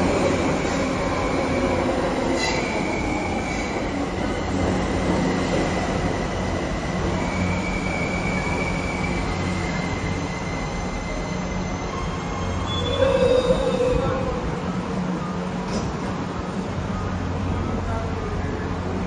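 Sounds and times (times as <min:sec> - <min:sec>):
subway train rumbling on rails: 0:00.0 - 0:19.0
high-pitched wheel squeal: 0:07.2 - 0:14.2.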